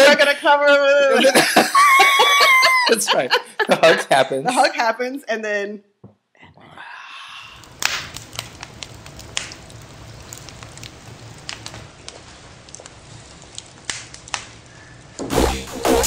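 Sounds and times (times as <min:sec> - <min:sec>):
wood fire crackling: 0:07.3 - 0:16.0.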